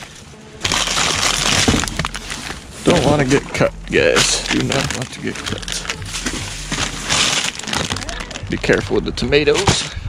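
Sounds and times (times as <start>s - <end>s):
rummaging in boxes and bags: 0.0s - 10.0s.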